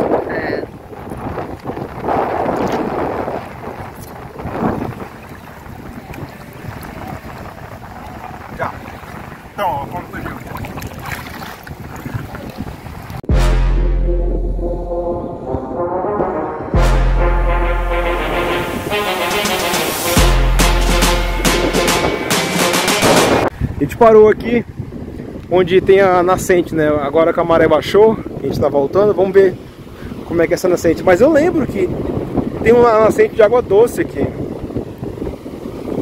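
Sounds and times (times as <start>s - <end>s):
sea water: 0.0s - 23.7s, 29.1s - 36.0s
wind on microphone: 0.0s - 36.0s
upbeat music with heavy bass: 13.3s - 23.5s.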